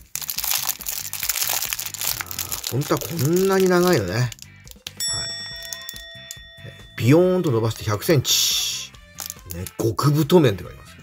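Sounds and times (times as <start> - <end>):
plastic packaging crinkling: 0.0 - 5.0, 9.2 - 9.7
background music: 0.0 - 11.0.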